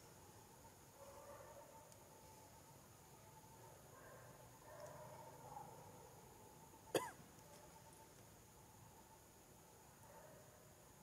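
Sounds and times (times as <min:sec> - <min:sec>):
faint steady background: 0:00.0 - 0:11.0
short cough: 0:06.9 - 0:07.2.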